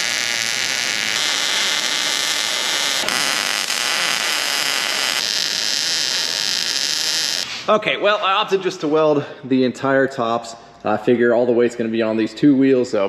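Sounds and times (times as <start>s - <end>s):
welding arc crackling hiss: 0.0s - 7.7s.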